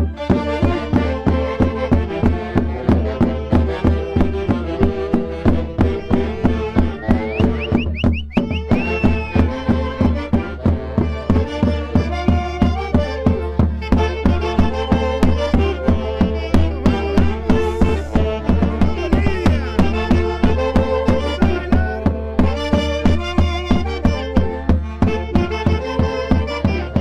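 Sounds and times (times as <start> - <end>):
festive band playing dance tune: 0.0 - 27.0
high whistle-like notes: 6.9 - 9.6.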